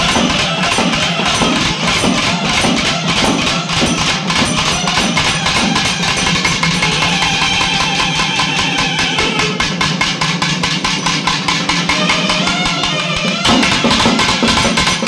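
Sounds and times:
drums in fast rhythm: 0:00.0 - 0:15.0.

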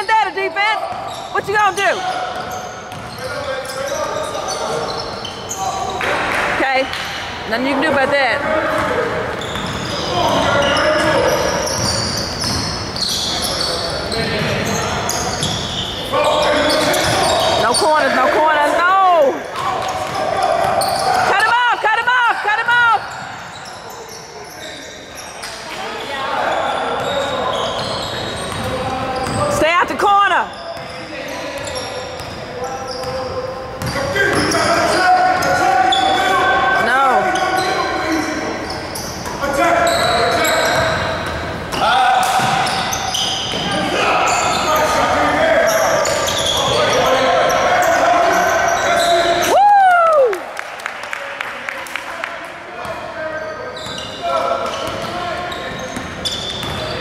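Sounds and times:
sneakers squeaking: 0:00.0 - 0:49.5, 0:52.8 - 0:57.0
spectators shouting and talking: 0:03.9 - 0:30.6, 0:31.2 - 0:50.6.

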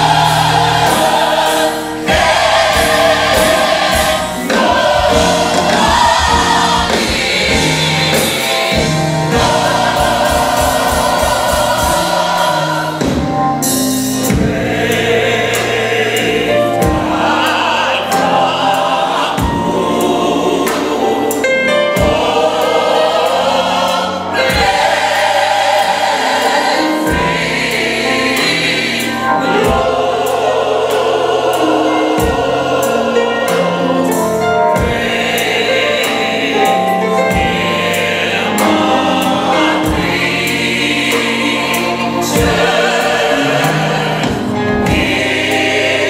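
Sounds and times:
drum hits: 0:00.0 - 0:18.5, 0:22.0 - 0:31.0, 0:38.6 - 0:46.0
band with keyboards and bass: 0:00.0 - 0:46.0
gospel choir singing: 0:00.0 - 0:46.0.

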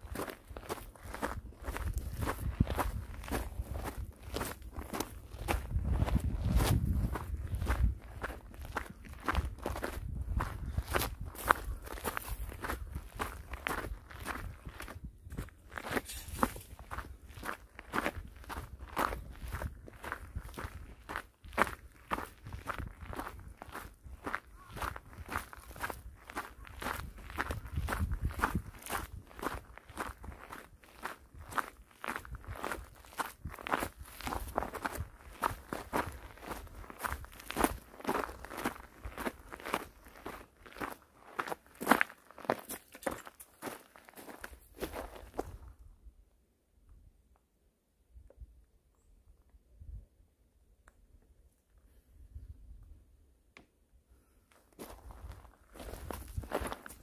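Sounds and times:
footsteps crunching on gravel: 0:00.0 - 0:45.6, 0:54.8 - 0:57.0.

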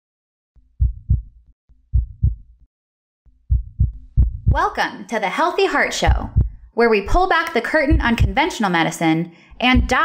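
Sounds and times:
heartbeat thumps: 0:00.8 - 0:02.6, 0:03.4 - 0:04.7, 0:05.9 - 0:07.2, 0:07.8 - 0:08.5, 0:09.6 - 0:10.0.

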